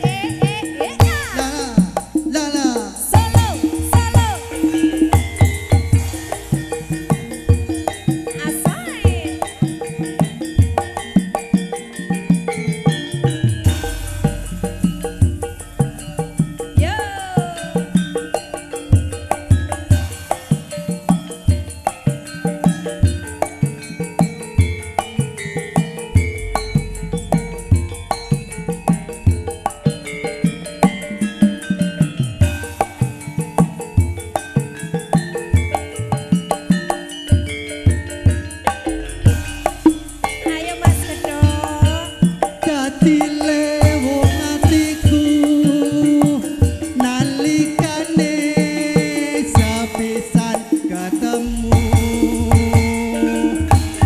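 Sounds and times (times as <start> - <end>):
hand drums struck in steady rhythm: 0.0 - 54.0
ringing bronze percussion notes: 0.0 - 54.0.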